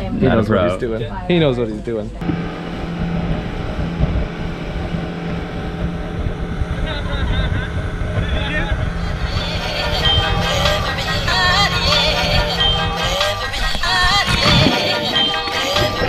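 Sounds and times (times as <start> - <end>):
motorboat engine running: 2.2 - 16.0
wind buffeting microphone: 2.2 - 16.0.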